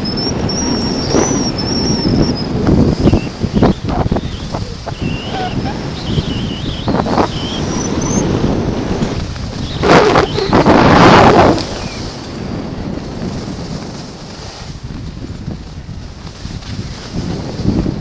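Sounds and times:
wind buffeting microphone: 0.0 - 18.0
skis hissing over snow: 13.0 - 17.9.

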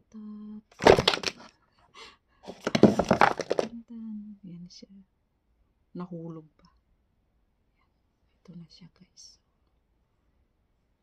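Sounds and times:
box rustling and knocking: 0.8 - 1.5, 2.5 - 3.7.

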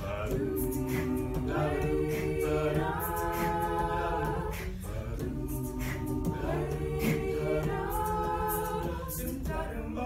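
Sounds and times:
a cappella group singing chords: 0.0 - 10.0.

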